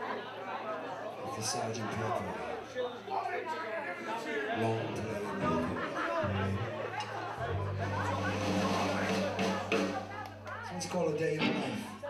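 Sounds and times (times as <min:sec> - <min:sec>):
audience chatter: 0:00.0 - 0:12.0.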